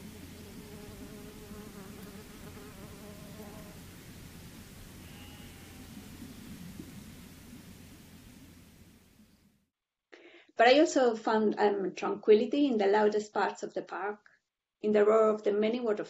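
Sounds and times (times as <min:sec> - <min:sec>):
flying insect buzzing: 0:00.0 - 0:04.2
steady low rumble: 0:05.7 - 0:09.6.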